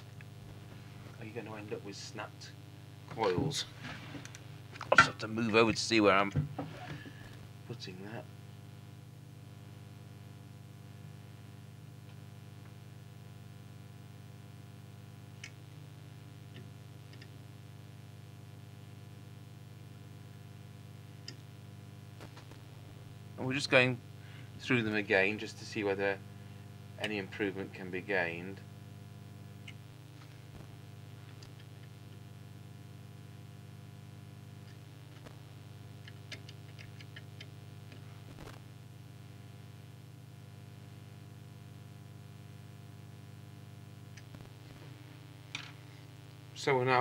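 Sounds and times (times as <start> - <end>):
light ticks of coil tuning: 0.0 - 3.6, 4.2 - 6.4, 7.1 - 47.0
low electrical hum: 0.0 - 47.0.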